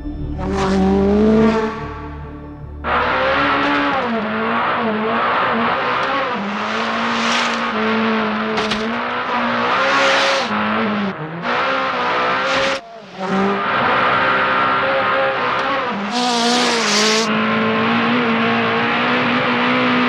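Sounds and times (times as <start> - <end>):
race car engine revving: 0.0 - 20.0
tyre and gravel noise: 5.6 - 10.6.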